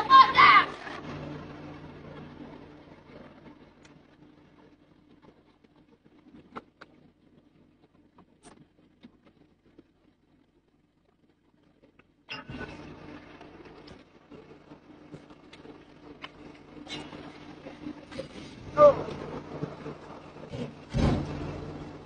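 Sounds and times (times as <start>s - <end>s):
truck engine idling: 0.0s - 7.0s, 11.9s - 22.0s.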